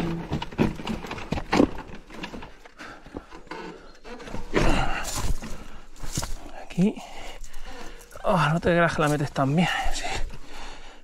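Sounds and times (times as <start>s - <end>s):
rider breathing: 2.4s - 8.5s, 9.4s - 11.0s.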